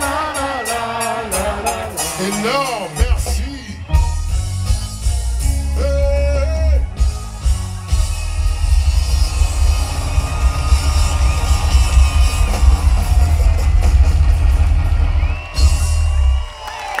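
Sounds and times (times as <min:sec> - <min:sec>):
heavy drums and cymbals: 0:00.0 - 0:16.5
live rock band playing: 0:00.0 - 0:16.7
crowd cheering: 0:00.0 - 0:17.0.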